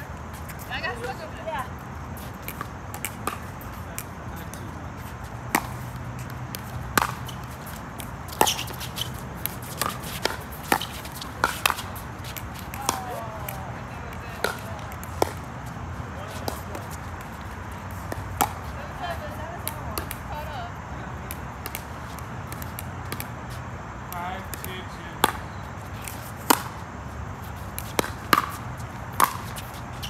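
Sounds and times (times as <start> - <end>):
paddles hitting ball: 2.4 - 4.6, 5.4 - 15.5, 16.2 - 18.8, 24.1 - 26.8, 27.6 - 30.0.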